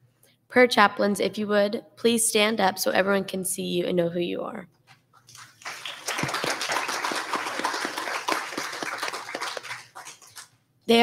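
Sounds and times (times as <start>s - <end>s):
congregation applauding: 5.3s - 10.6s.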